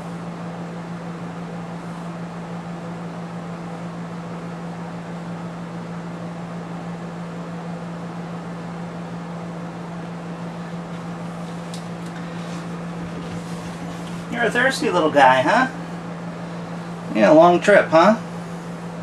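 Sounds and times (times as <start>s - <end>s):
fan humming with low drone: 0.0s - 19.0s.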